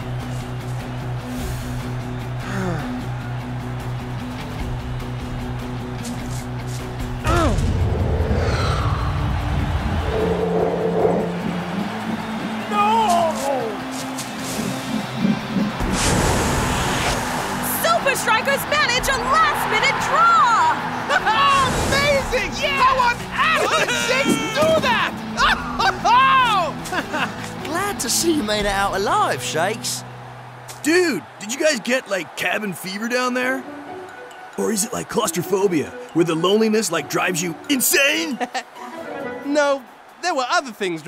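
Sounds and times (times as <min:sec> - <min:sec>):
stadium crowd cheering: 0:00.0 - 0:41.0
cartoon background music: 0:17.7 - 0:30.0.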